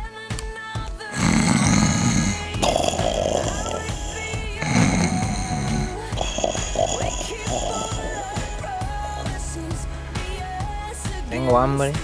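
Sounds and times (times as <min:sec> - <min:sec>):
background music: 0:00.0 - 0:12.0
man snoring loudly: 0:01.1 - 0:09.6.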